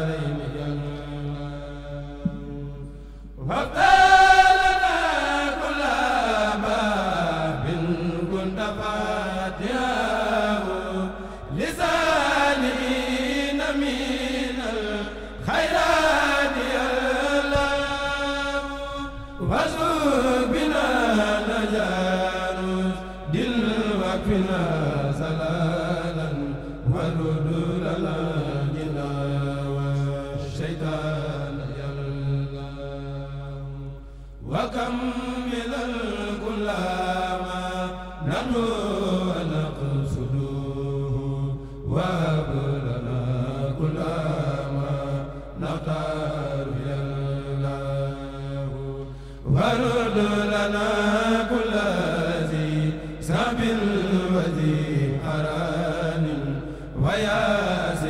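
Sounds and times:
male chorus chanting in unison: 0.0 - 58.0.

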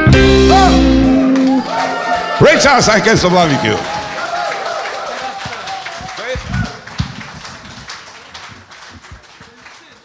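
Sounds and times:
audience clapping: 1.2 - 10.0.

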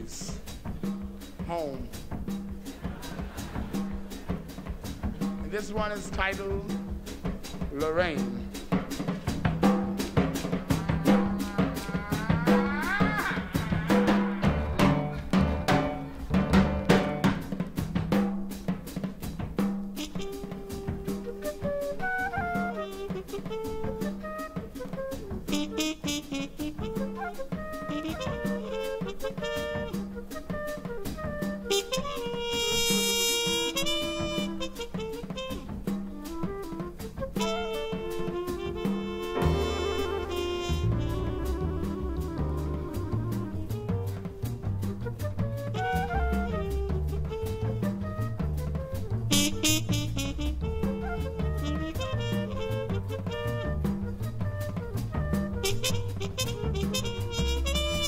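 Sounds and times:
bass: 0.0 - 58.0
drum kit with snare and rimshots: 0.0 - 58.0
piano: 0.0 - 58.0
horn playing melody: 10.0 - 16.2, 19.9 - 58.0.

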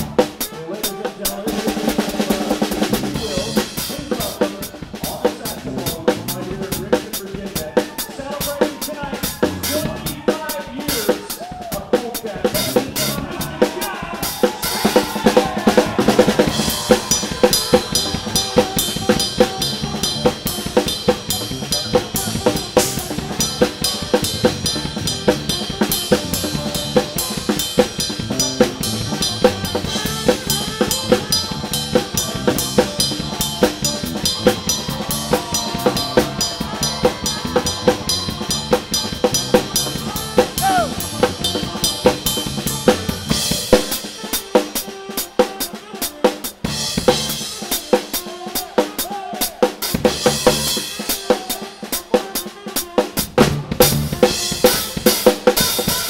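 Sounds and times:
deep bass: 0.0 - 0.4, 5.1 - 6.9, 9.3 - 10.2, 12.5 - 13.7, 15.5 - 43.6
drum kit groove: 0.0 - 56.0
live soul band: 0.0 - 56.0.

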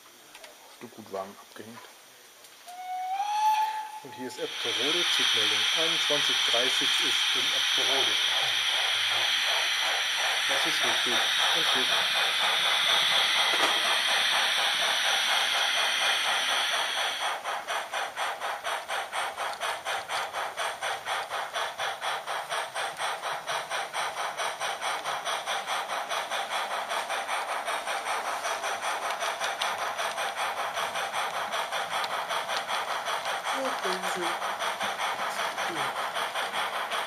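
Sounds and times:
steam hissing: 0.0 - 37.0
steam locomotive chuffing: 2.7 - 37.0.

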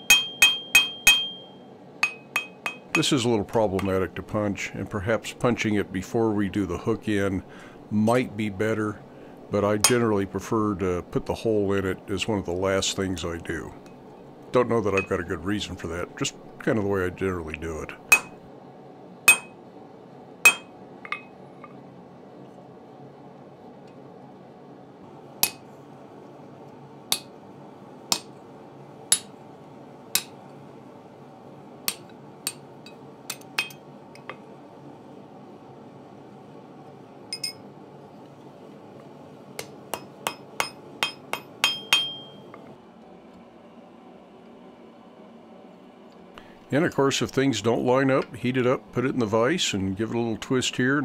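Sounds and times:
hammer striking metal punch: 0.0 - 3.1, 18.1 - 18.4, 19.3 - 19.6, 20.5 - 21.3, 25.4 - 25.6, 39.6 - 42.4
steady low hum: 0.0 - 51.0.

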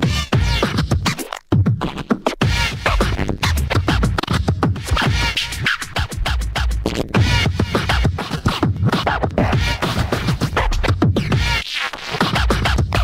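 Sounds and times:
fast hard kick drum: 0.0 - 11.6.

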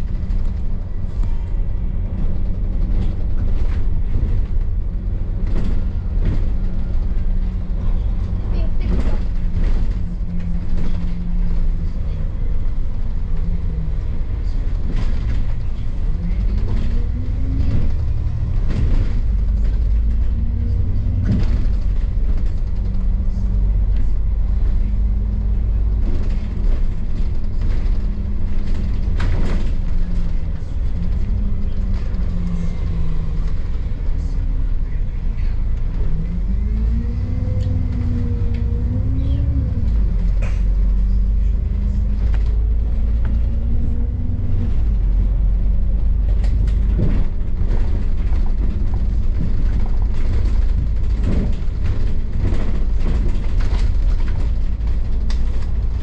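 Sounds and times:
bus body rattling: 0.0 - 56.0
bus engine rumbling: 0.0 - 56.0.

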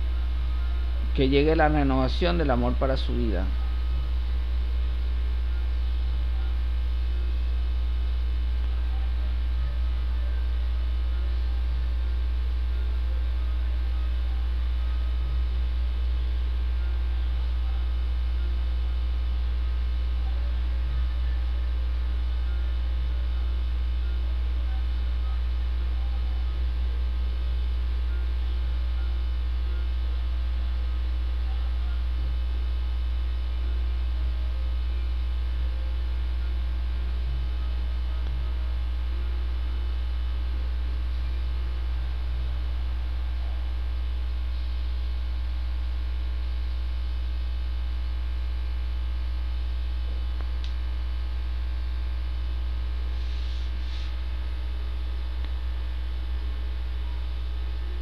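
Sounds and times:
low electrical hum: 0.0 - 58.0.

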